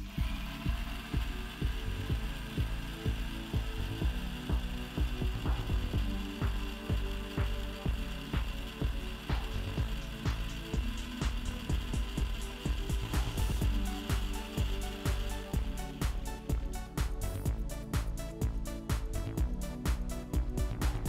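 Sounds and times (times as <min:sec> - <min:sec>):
background music with beat: 0:00.0 - 0:21.0
mixer grinder motor whine: 0:00.0 - 0:21.0.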